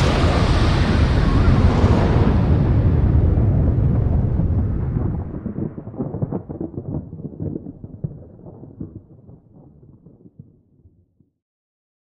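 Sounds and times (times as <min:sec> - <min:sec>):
explosion rumble: 0:00.0 - 0:10.6.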